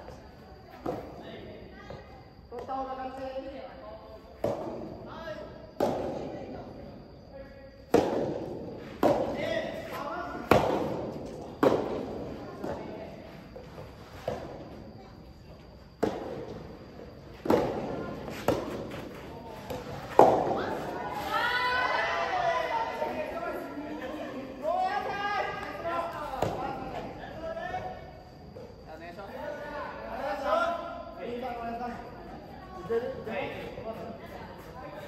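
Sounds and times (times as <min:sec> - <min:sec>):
ball hitting rackets: 0:05.8 - 0:06.3, 0:07.9 - 0:13.1, 0:15.9 - 0:21.2.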